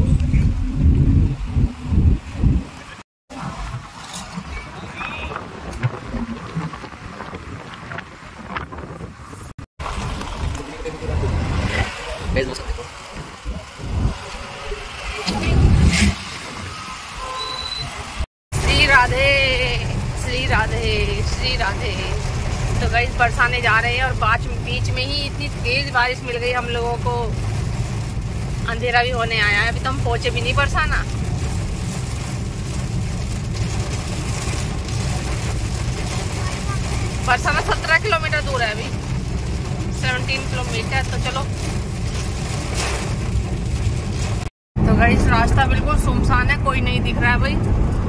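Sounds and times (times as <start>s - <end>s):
car road and engine rumble: 0.0s - 48.0s.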